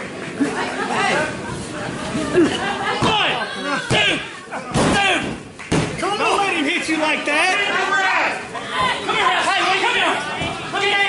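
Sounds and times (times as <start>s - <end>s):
crowd shouting: 2.1s - 5.4s, 6.0s - 11.0s.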